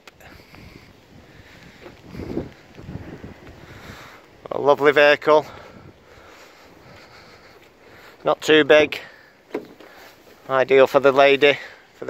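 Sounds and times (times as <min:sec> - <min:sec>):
faint outdoor background noise: 0:00.0 - 0:12.0.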